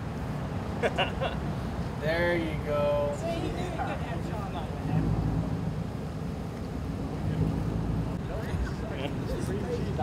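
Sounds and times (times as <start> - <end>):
vehicle engine rumbling: 2.9 - 10.0
faint voices: 7.0 - 10.0.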